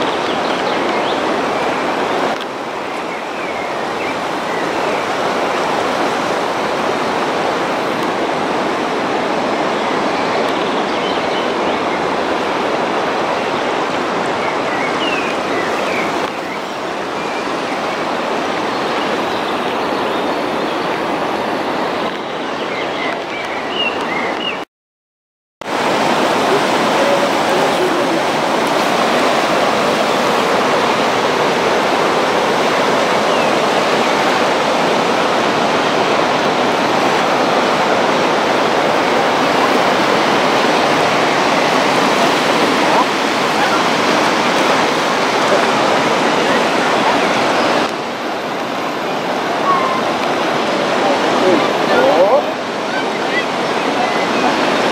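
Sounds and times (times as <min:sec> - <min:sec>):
water rushing over a weir: 0:00.0 - 0:24.6, 0:25.6 - 0:54.9.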